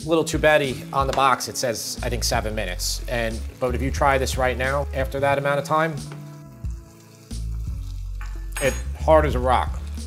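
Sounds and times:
pasta sizzling in a pan: 0:00.6 - 0:08.6.

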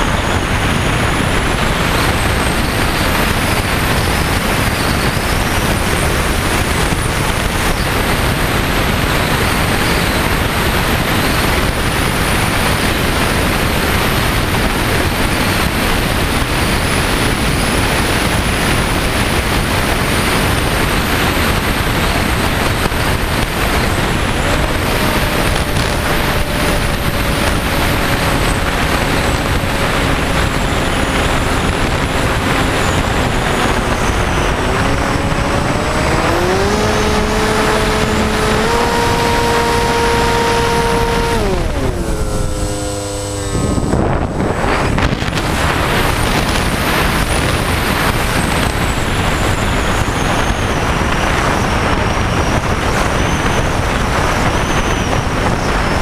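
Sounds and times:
propeller motor whine: 0:00.0 - 0:56.0
wind rushing over camera: 0:00.0 - 0:56.0.

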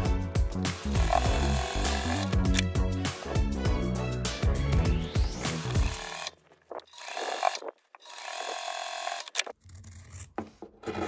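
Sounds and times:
background music: 0:00.0 - 0:06.3
sewing machine stitching fabric: 0:06.9 - 0:09.6.

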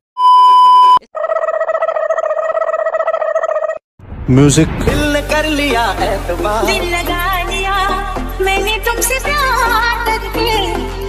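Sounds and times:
high steady test beep: 0:00.2 - 0:01.0.

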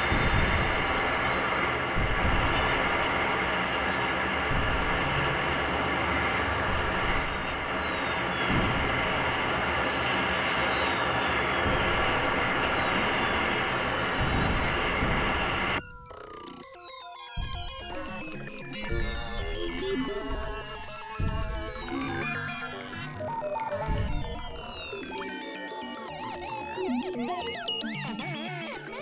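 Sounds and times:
falling whistle-like glides: 0:00.0 - 0:29.0
synthesizer noise drone: 0:00.0 - 0:29.0.

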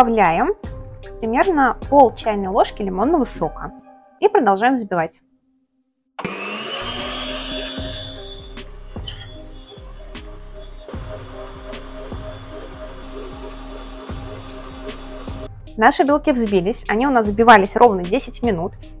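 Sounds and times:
stand mixer motor whining: 0:06.2 - 0:15.5.

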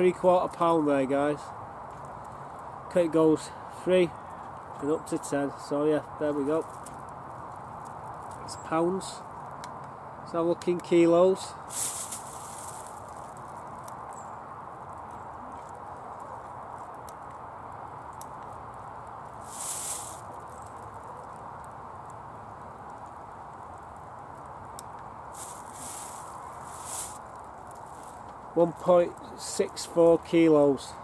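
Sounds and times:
steady background hiss: 0:00.0 - 0:31.0
plastic bag rustling: 0:11.7 - 0:13.8, 0:19.4 - 0:21.0, 0:25.3 - 0:28.3.

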